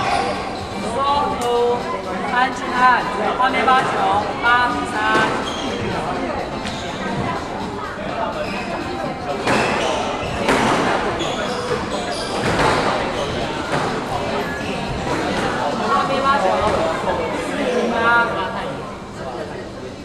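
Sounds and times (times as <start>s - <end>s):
people talking: 0.0s - 20.0s.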